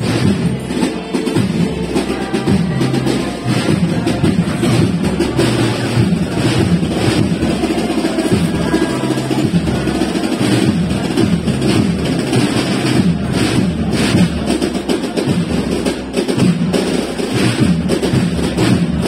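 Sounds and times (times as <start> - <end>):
bass drum beat: 0.0 - 19.0
snare drum strokes: 0.0 - 19.0
wind band playing: 0.0 - 19.0.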